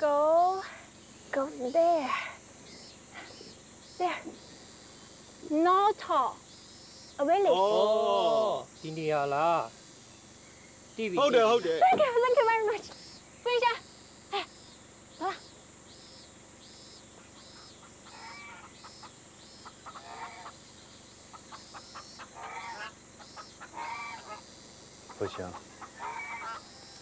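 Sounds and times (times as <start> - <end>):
high chirping: 0.0 - 7.7, 8.4 - 27.0
ducks quacking: 17.2 - 20.6, 21.3 - 26.7.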